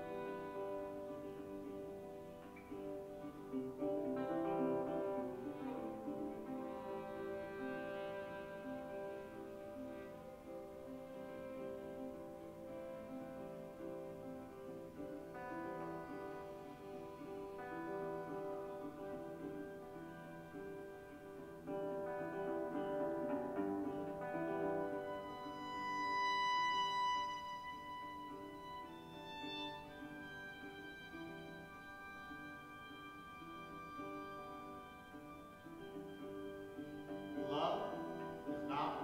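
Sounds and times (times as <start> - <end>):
guitar: 0.0 - 39.0
violin: 0.0 - 39.0.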